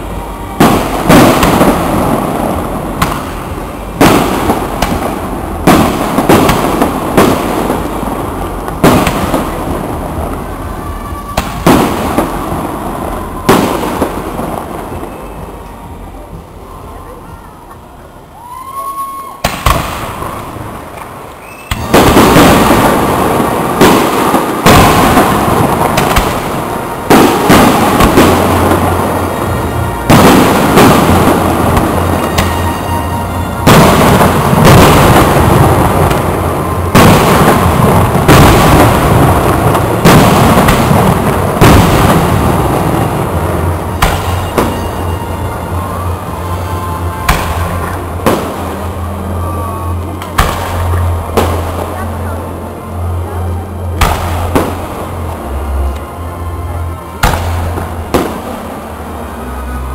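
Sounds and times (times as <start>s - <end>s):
heavy fireworks bangs: 0.0s - 16.9s, 19.4s - 59.9s
fireworks bursts and crackling: 0.0s - 59.9s.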